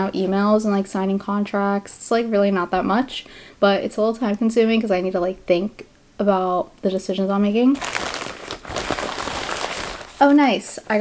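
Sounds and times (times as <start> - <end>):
packaging crinkling and rustling: 7.7 - 10.4.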